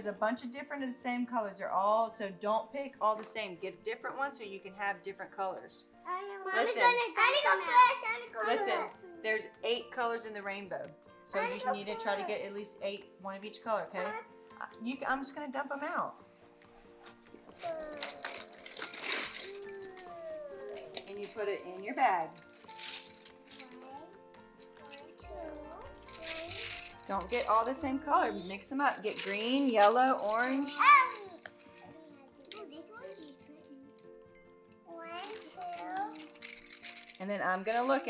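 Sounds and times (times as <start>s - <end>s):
soft background music: 0.0s - 38.0s
child's voice: 6.1s - 9.2s, 17.6s - 21.0s, 23.6s - 24.2s, 24.8s - 26.7s, 30.6s - 33.8s, 34.9s - 36.3s
colored pencils clattering onto floor: 16.9s - 38.0s.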